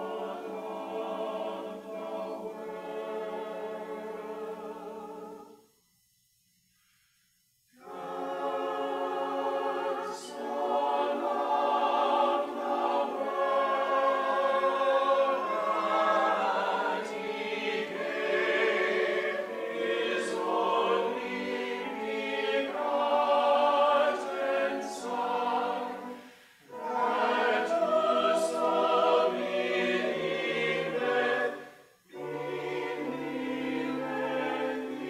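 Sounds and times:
church choir singing: 0:00.0 - 0:05.8, 0:07.7 - 0:35.0.

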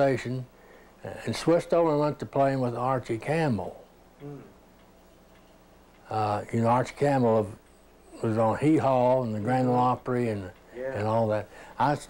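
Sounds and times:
low steady hum: 0:00.0 - 0:12.0
man saying mm: 0:04.2 - 0:04.6.

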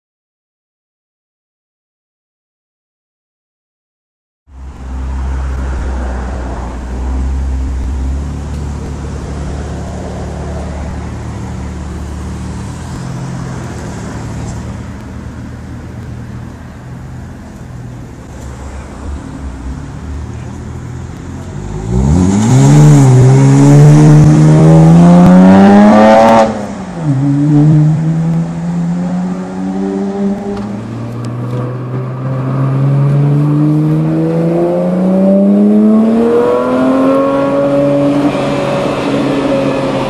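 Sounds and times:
car engine idling: 0:04.5 - 0:21.8
car engine accelerating: 0:04.5 - 0:40.0.

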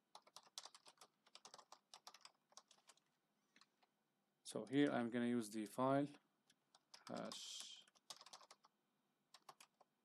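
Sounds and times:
typing on computer keyboard: 0:00.1 - 0:03.0, 0:06.5 - 0:09.9.

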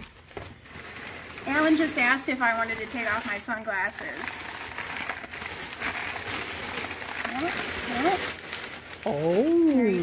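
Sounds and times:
packing paper crinkling: 0:00.0 - 0:10.0.

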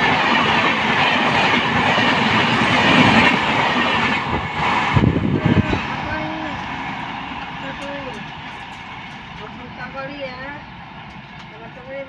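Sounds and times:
train coaches rolling: 0:00.0 - 0:12.0
people's voices: 0:05.2 - 0:06.8, 0:07.5 - 0:08.4.

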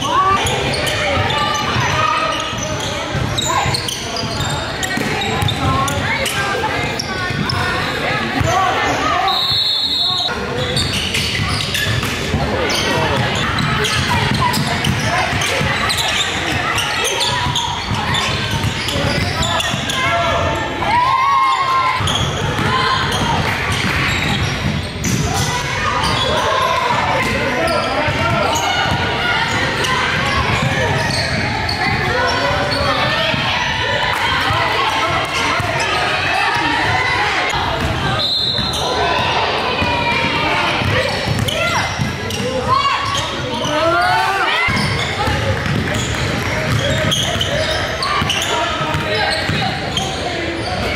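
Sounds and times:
high whistle: 0:09.2 - 0:10.3, 0:38.2 - 0:38.8
basketball bouncing on wooden floor: 0:45.6 - 0:47.4.

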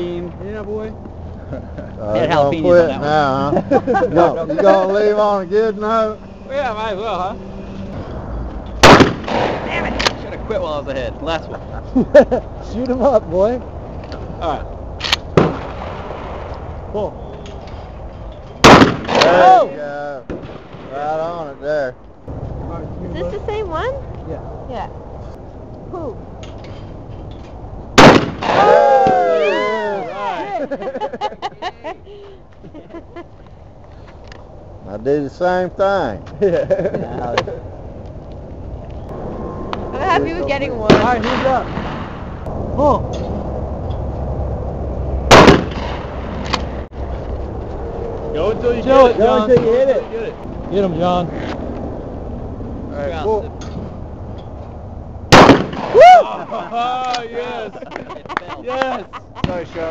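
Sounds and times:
people exclaiming and laughing: 0:01.4 - 0:05.5, 0:28.5 - 0:33.4, 0:55.9 - 0:59.9
shotgun shot: 0:08.8 - 0:10.2, 0:15.0 - 0:16.5, 0:18.6 - 0:19.4, 0:28.0 - 0:29.2, 0:40.9 - 0:42.2, 0:45.3 - 0:46.1, 0:55.3 - 0:56.0.

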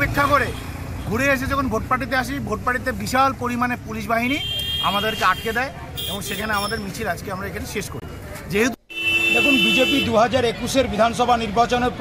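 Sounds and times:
man speaking: 0:00.0 - 0:12.0
road traffic rumble: 0:00.0 - 0:12.0.

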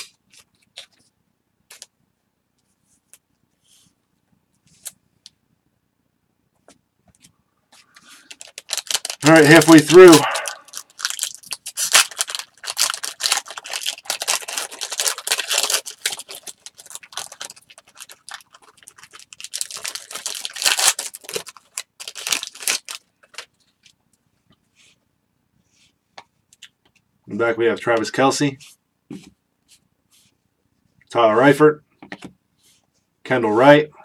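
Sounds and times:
cards being handled: 0:06.6 - 0:24.0
foil wrapper crinkling and tearing: 0:07.8 - 0:23.6.

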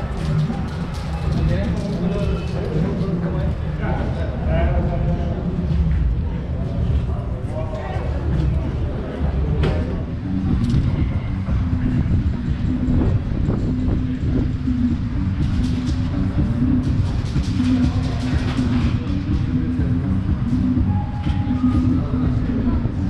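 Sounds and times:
loud low rumble: 0:00.0 - 0:23.0.

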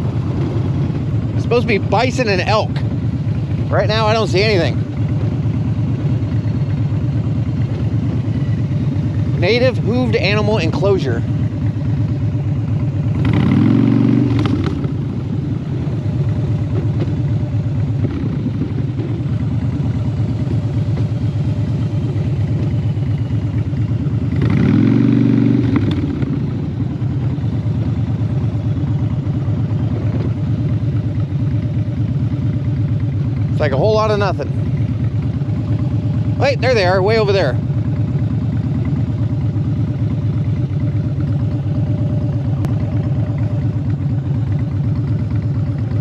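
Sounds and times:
motorcycle engine running: 0:00.0 - 0:46.0.

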